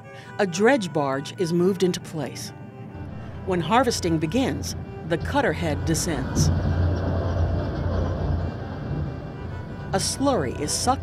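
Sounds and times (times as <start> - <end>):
dredge cutter head rumbling: 2.9 - 11.0.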